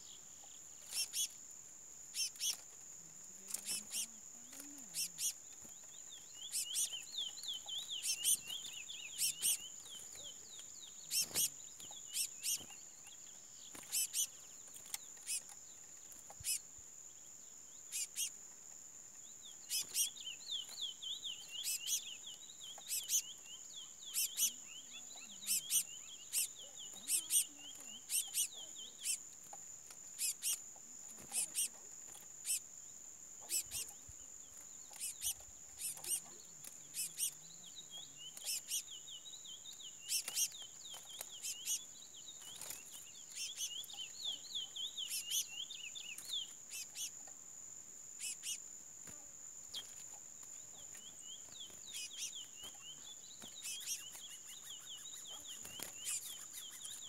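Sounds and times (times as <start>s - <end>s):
rapid warbling birdsong: 0.0s - 48.8s, 49.6s - 57.0s.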